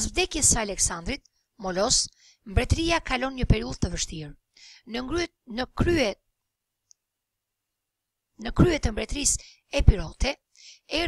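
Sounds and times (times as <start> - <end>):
narrator speaking: 0.0 - 6.2, 8.4 - 11.0.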